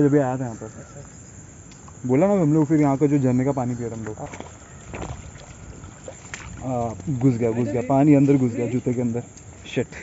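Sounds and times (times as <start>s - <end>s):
shoe splashing in shallow water: 4.0s - 8.7s.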